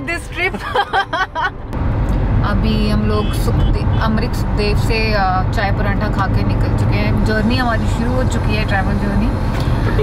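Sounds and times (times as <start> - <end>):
car road rumble: 0.0 - 10.0.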